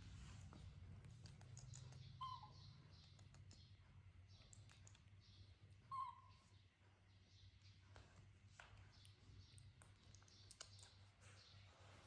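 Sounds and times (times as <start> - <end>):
baby monkey squeaks: 1.3 - 3.3, 5.8 - 6.5.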